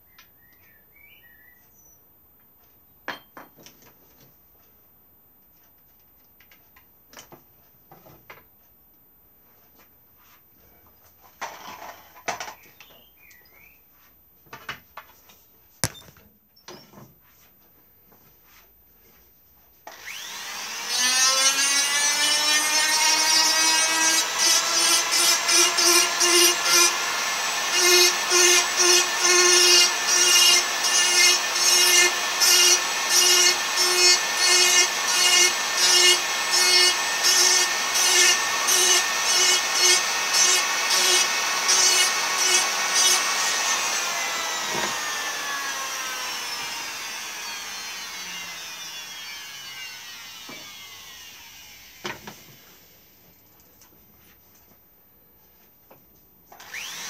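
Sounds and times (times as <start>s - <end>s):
electric drill boring into wood: 19.9s - 52.9s, 56.5s - 57.0s.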